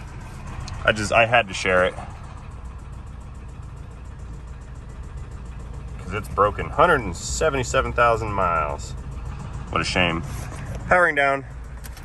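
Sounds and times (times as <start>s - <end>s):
engine idling with rapid knock: 0.0s - 12.0s.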